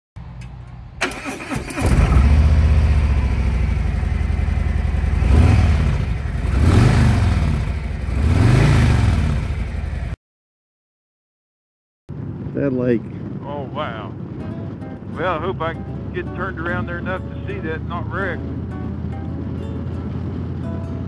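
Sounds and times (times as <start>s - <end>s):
electric starter cranking: 1.0s - 2.2s
motorcycle engine idling and revving: 1.2s - 10.2s, 15.6s - 21.0s.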